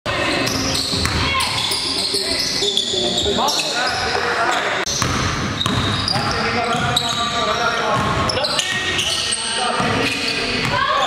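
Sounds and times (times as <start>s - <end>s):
players' voices: 0.1s - 11.0s
sneaker squeaks: 0.2s - 11.0s
basketball bouncing on wooden floor: 5.0s - 6.4s.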